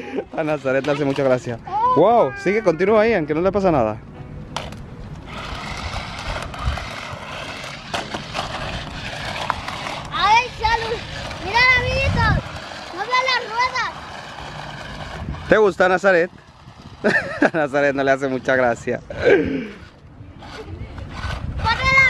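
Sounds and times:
remote-control car whirring: 0:00.1 - 0:02.1, 0:04.6 - 0:22.0
child calling out: 0:01.7 - 0:03.1.

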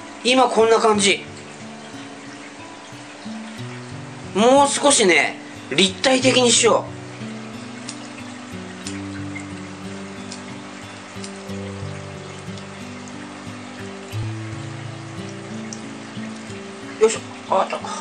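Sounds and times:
soft slow background music: 0:00.0 - 0:18.0
water trickling: 0:00.0 - 0:18.0
faint ticks: 0:07.1 - 0:17.8.

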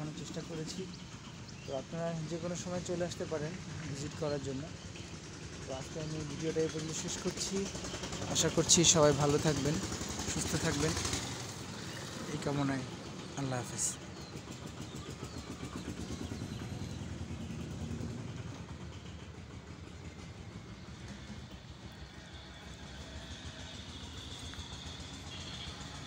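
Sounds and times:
vehicle engine rumbling: 0:00.0 - 0:26.0.

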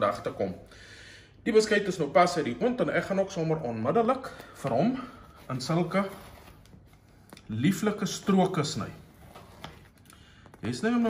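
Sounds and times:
man speaking: 0:00.0 - 0:00.7, 0:01.4 - 0:06.4, 0:07.5 - 0:09.1, 0:10.6 - 0:11.0.

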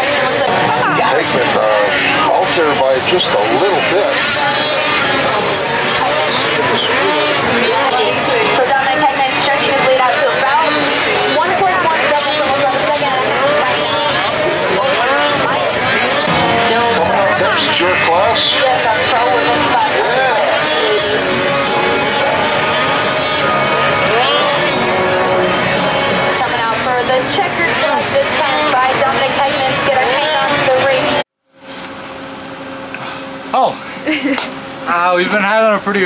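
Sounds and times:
public address commentary: 0:00.0 - 0:31.2, 0:34.8 - 0:36.0
snowmobile engines revving: 0:00.0 - 0:31.2
music: 0:16.3 - 0:28.2.

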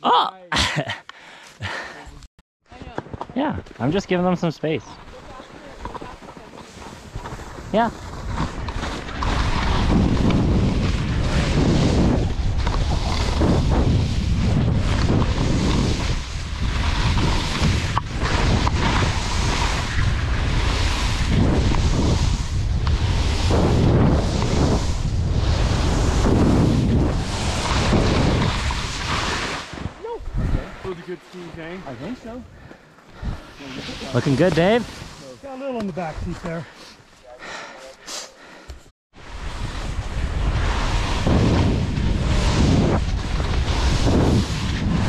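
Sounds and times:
skis scraping through snow: 0:03.8 - 0:38.6, 0:39.2 - 0:45.0
wind rushing over microphone: 0:05.6 - 0:35.2, 0:39.2 - 0:45.0.

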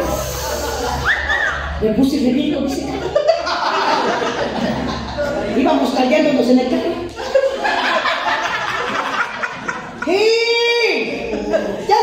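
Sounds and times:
woman talking: 0:01.8 - 0:03.2, 0:05.2 - 0:07.1, 0:10.0 - 0:12.0
chuckling laughter: 0:03.0 - 0:05.4, 0:07.1 - 0:10.2.

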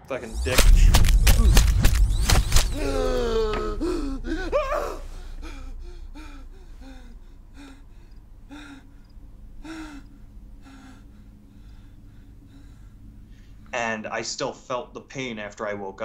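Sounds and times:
man gasping and whimpering: 0:02.7 - 0:12.8.

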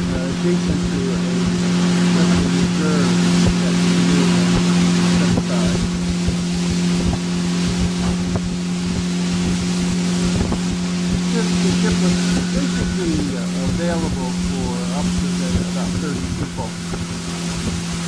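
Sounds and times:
boat motor droning: 0:00.0 - 0:18.0
water rushing past hull: 0:00.0 - 0:18.0
wind on microphone: 0:00.0 - 0:18.0.

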